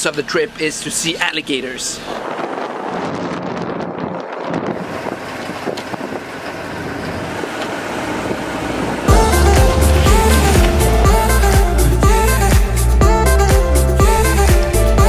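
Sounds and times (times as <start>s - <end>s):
wind buffeting microphone: 2.0s - 9.3s
music with heavy bass beat: 9.1s - 15.0s.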